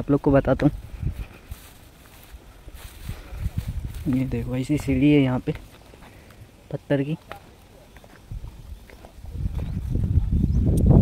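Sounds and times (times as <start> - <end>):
low rumble on microphone: 2.4 - 5.1, 8.3 - 11.0
footsteps on stone steps: 7.2 - 10.2.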